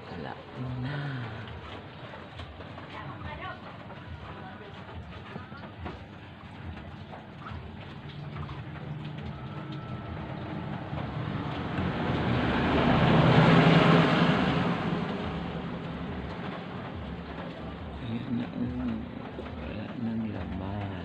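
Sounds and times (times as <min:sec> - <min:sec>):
vehicle passing by: 0:07.8 - 0:20.5.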